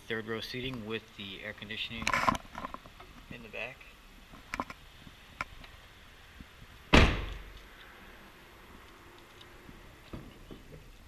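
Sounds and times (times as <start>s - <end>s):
car liftgate slamming shut: 6.9s - 7.5s.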